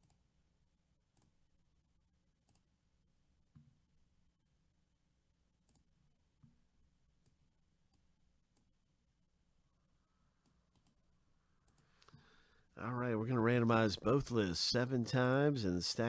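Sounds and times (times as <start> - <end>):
computer mouse clicks: 2.4 - 2.7, 5.6 - 6.6, 10.4 - 11.0, 11.6 - 12.2.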